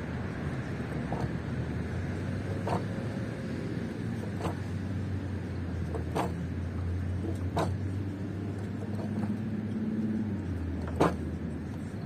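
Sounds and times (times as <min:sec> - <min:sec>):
distant road traffic hum: 0:00.0 - 0:12.0.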